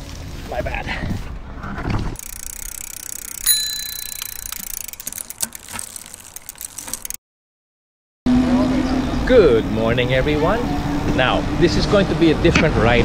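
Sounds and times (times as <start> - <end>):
bicycle bell ringing: 2.2 - 7.2.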